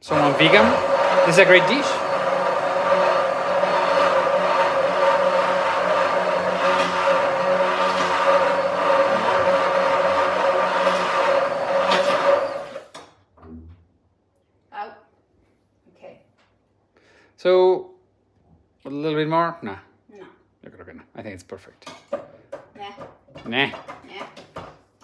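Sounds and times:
immersion blender running: 0:00.0 - 0:12.9.

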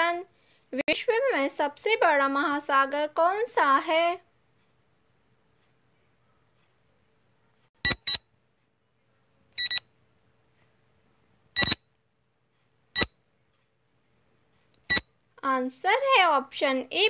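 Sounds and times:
short electronic beeps: 0:07.8 - 0:08.2, 0:09.6 - 0:09.8, 0:11.6 - 0:11.8.

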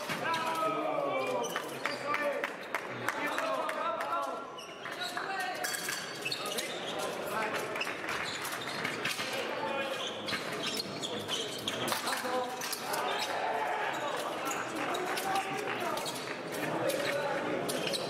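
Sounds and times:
voices echoing in a hall: 0:00.0 - 0:18.0.

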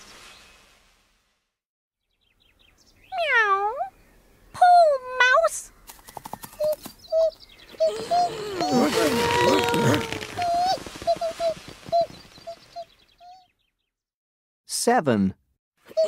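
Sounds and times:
squeaky chirps and clicks: 0:05.9 - 0:13.4
cat meowing: 0:07.9 - 0:10.8.

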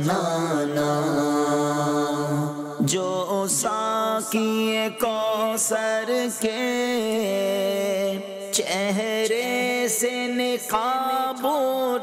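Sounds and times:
man singing devotional song: 0:00.0 - 0:12.0.

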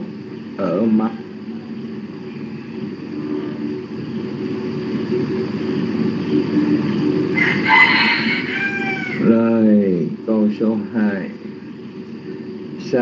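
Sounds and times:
rooster crowing: 0:07.3 - 0:09.3.

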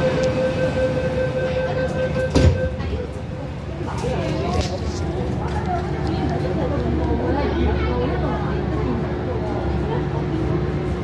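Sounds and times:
train running noise: 0:00.0 - 0:11.0.

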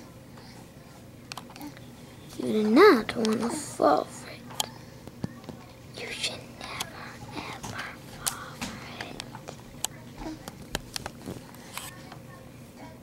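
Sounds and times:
soft whispering: 0:03.2 - 0:05.0, 0:05.9 - 0:09.3.

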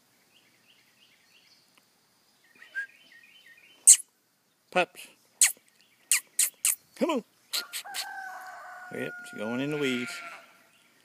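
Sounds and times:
lips making squeaky kissing sounds: 0:03.9 - 0:04.1, 0:05.4 - 0:06.8, 0:07.5 - 0:08.1.

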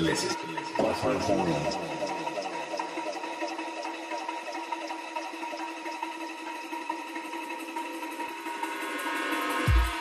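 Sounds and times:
steady synth drone: 0:00.4 - 0:08.6.

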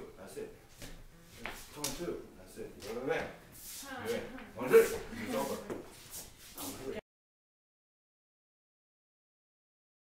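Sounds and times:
indistinct voices in a room: 0:00.0 - 0:07.0.

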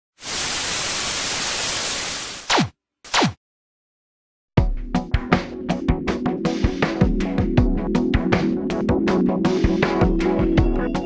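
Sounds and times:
television static hiss: 0:00.2 - 0:02.4.

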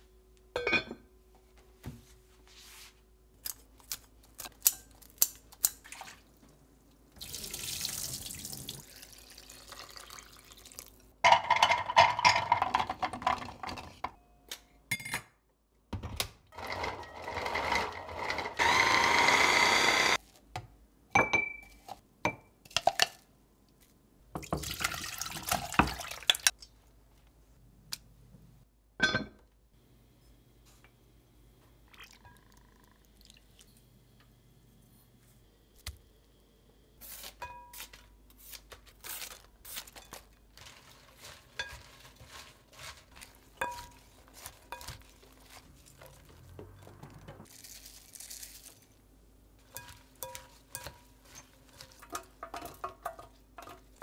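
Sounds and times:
tap running water: 0:24.4 - 0:26.5.

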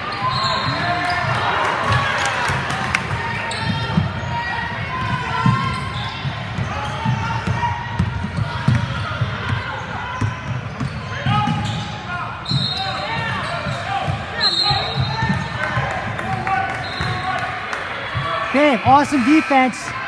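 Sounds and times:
players and spectators chattering: 0:00.0 - 0:20.0.

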